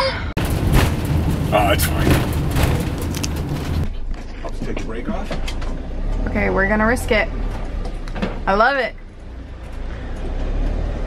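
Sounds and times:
vehicle engine and road rumble: 0.0s - 11.0s.

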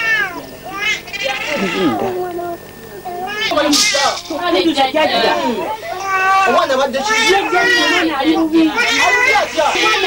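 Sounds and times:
infant crying: 0.0s - 2.2s, 5.2s - 10.0s.

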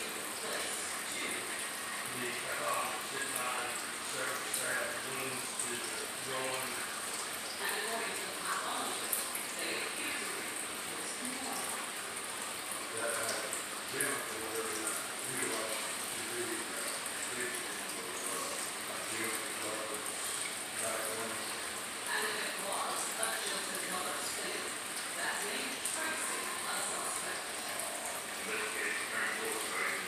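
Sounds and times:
distant indistinct voices: 0.0s - 30.0s.

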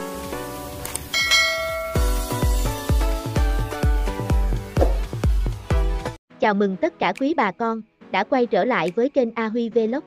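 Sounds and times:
background music: 0.0s - 10.0s
bright bell chime: 1.2s - 2.3s.

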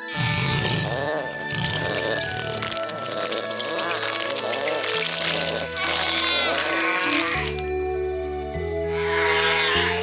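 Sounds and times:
background music: 0.0s - 10.0s
cartoon dinosaurs squealing: 1.6s - 7.6s.

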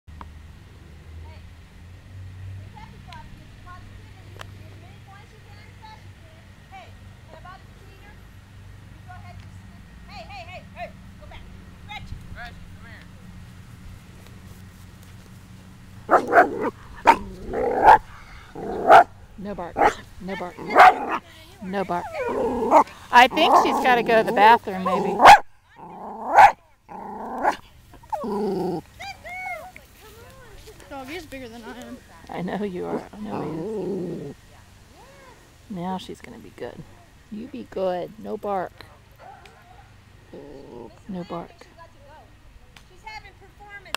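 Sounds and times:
distant voices: 0.6s - 43.9s
dog barking and yipping: 16.1s - 19.1s, 19.8s - 20.0s, 20.6s - 21.2s, 22.0s - 23.9s, 24.8s - 25.5s, 26.2s - 26.6s, 38.9s - 40.0s.

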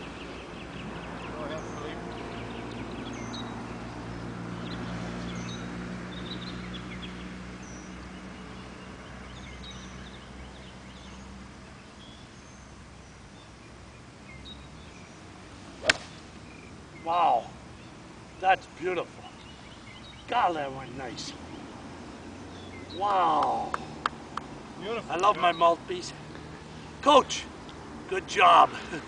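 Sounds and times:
golf club striking ball: 15.8s - 16.4s.

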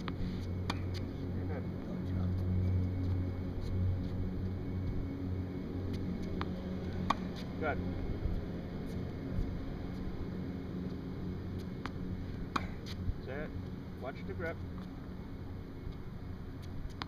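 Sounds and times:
tennis ball bouncing on hard court: 0.0s - 1.0s, 6.2s - 7.4s, 11.6s - 13.0s, 16.6s - 17.0s
low background rumble: 0.0s - 17.0s
racquet hitting tennis ball: 0.6s - 1.0s, 6.3s - 7.4s, 11.8s - 12.9s.

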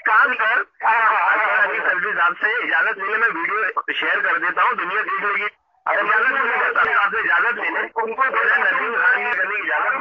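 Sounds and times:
person talking: 0.0s - 10.0s.

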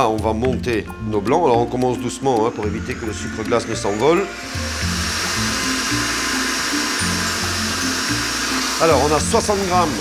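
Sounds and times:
background music with bass line: 0.0s - 10.0s
stand mixer whisking: 2.4s - 10.0s.

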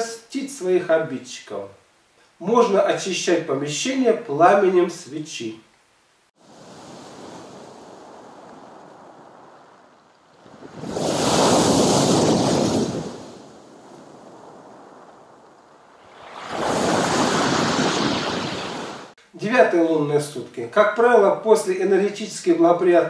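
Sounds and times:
surf crashing on pebble shore: 6.4s - 19.2s
water washing: 15.1s - 19.2s.

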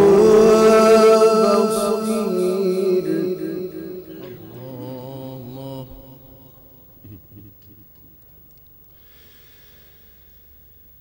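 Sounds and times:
man chanting melodic recitation: 0.0s - 7.6s.

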